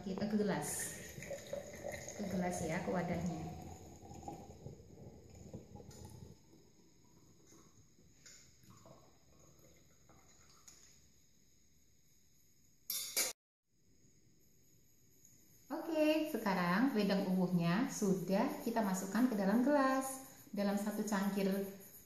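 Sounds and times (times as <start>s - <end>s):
liquid pouring into a jar: 0.2s - 11.0s.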